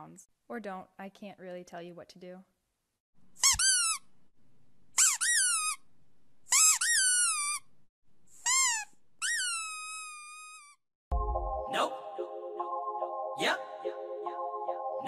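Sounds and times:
high-pitched squeaks: 6.5 - 7.7, 8.4 - 10.8
music: 11.1 - 15.0.

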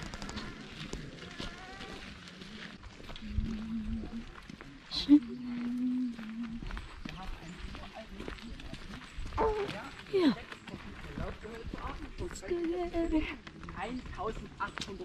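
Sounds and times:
indistinct voices: 0.0 - 14.9
footsteps on cobblestones: 0.0 - 15.0.

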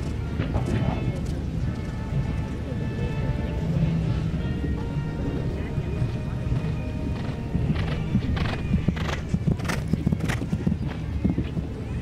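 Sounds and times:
horse hoofbeats on grass: 0.0 - 12.0.

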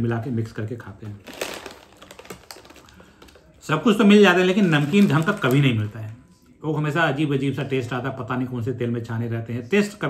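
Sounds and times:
plastic snack bag crinkling: 0.8 - 6.2.

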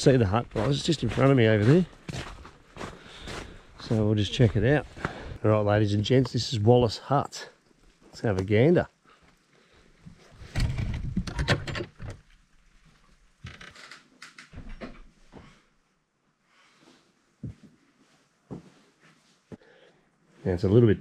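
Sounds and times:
footsteps on floorboards: 0.5 - 5.3, 17.4 - 19.6
door creaking: 10.3 - 12.4, 13.4 - 15.2.

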